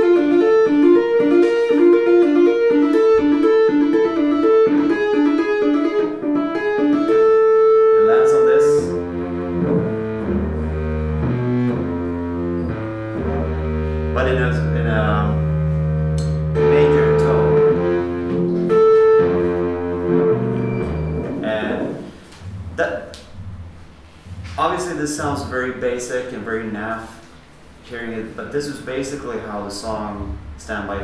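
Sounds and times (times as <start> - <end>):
electric guitar solo: 0.0 - 22.2.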